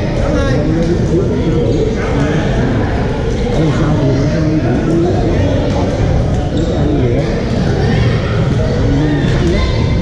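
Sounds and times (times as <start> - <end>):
players' voices echoing: 0.0 - 10.0.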